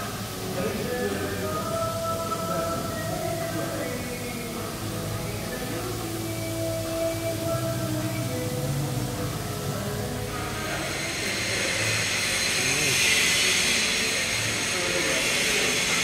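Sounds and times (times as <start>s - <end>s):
indistinct voices: 0.0s - 16.0s
steady hiss: 0.0s - 16.0s.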